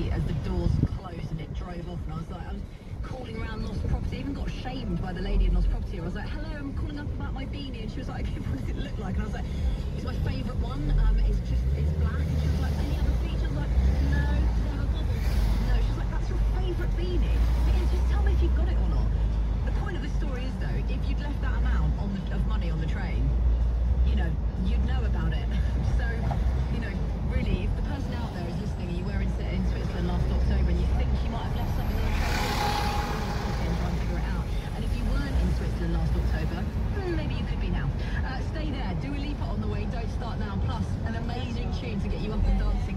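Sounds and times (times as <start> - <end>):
car driving in traffic: 0.0 - 42.9
car radio talk and music: 0.0 - 42.9.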